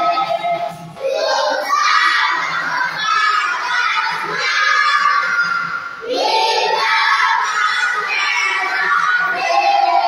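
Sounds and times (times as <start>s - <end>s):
children singing together: 0.0s - 10.0s.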